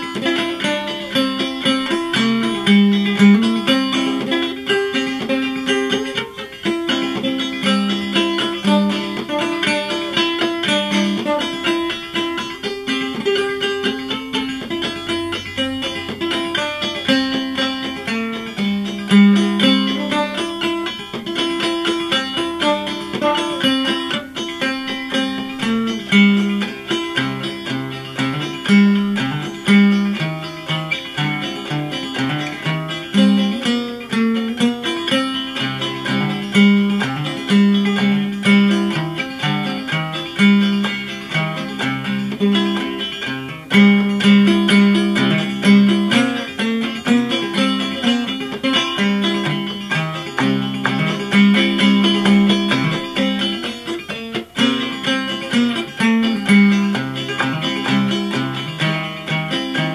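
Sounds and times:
banjo plucked notes: 0:00.0 - 0:59.9.

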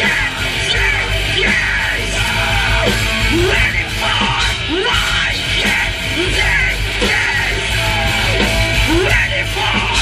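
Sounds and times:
bass guitar: 0:00.0 - 0:10.0
distorted electric guitars: 0:00.0 - 0:10.0
drums: 0:00.0 - 0:10.0
vocalist yelling: 0:03.3 - 0:07.6.

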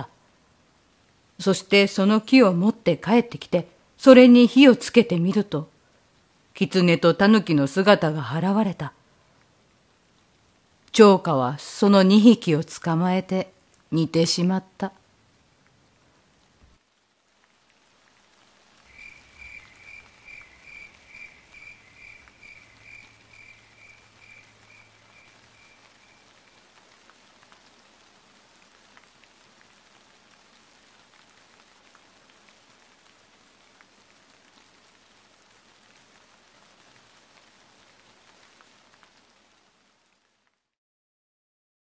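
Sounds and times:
faint steady rain: 0:00.0 - 0:40.8
water drips: 0:18.3 - 0:33.1.

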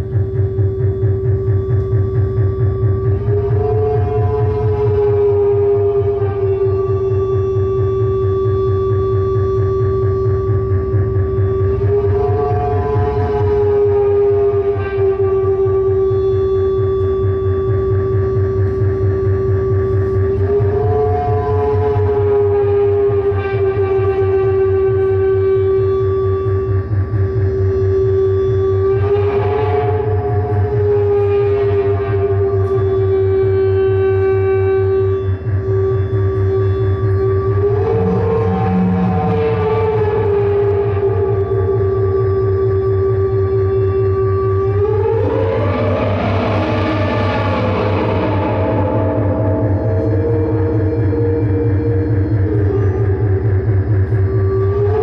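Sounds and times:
synthesizer drone tone: 0:00.0 - 0:55.0
low rapidly pulsing buzz: 0:38.2 - 0:54.6.

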